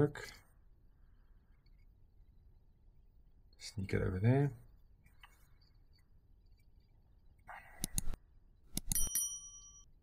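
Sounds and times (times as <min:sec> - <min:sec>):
sharp clicks: 0:07.8 - 0:09.1
bright bell ding: 0:08.9 - 0:09.9.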